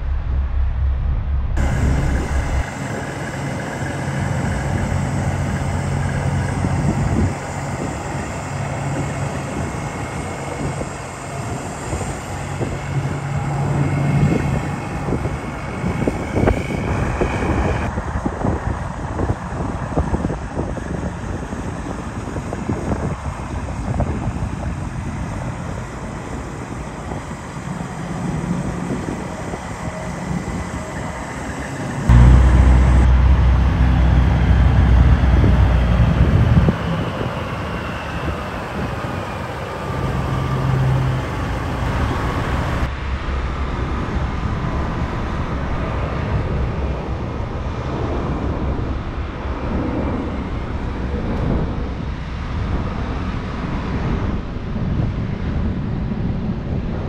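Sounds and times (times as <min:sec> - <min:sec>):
diesel truck engines running: 0:00.0 - 0:17.9, 0:24.3 - 0:42.9.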